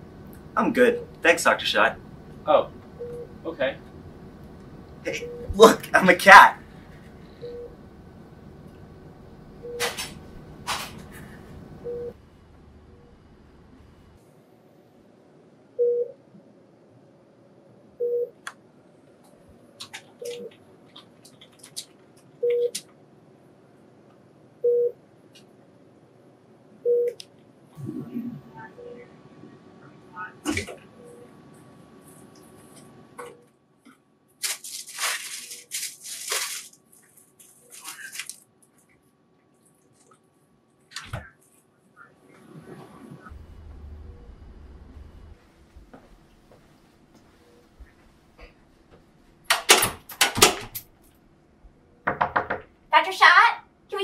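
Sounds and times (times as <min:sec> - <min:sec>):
door swinging shut and latching: 0:49.5 - 0:50.8.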